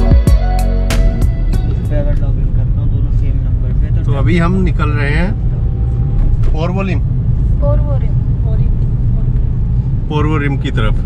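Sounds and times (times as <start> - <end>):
car engine rumble: 0.0 - 11.0.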